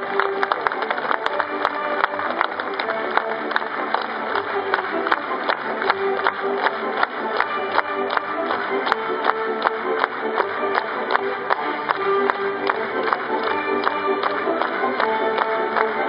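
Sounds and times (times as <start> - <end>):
music with held notes: 0.0 - 16.0.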